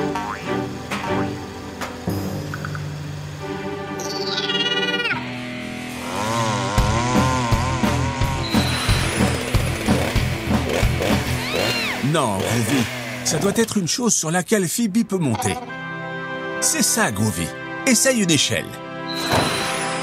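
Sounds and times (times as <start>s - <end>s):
cartoon background music: 0.0s - 20.0s
cartoon chainsaw buzz: 4.3s - 13.6s.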